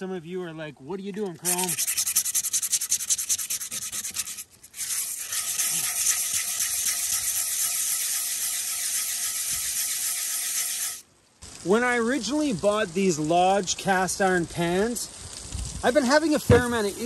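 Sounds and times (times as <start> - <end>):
abrasive scrubbing cast iron skillet: 1.2 - 12.4.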